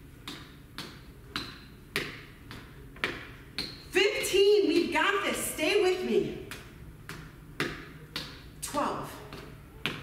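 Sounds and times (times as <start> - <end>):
feet tapping on gym floor: 0.0 - 4.0, 6.4 - 10.0.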